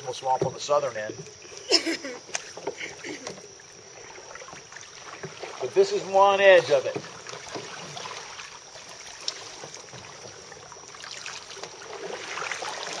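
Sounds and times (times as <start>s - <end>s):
kayak paddles splashing: 0.0s - 13.0s.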